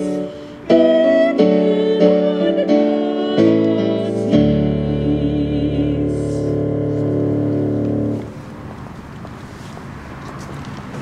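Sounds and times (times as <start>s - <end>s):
electronic keyboard chord: 0.0s - 8.4s.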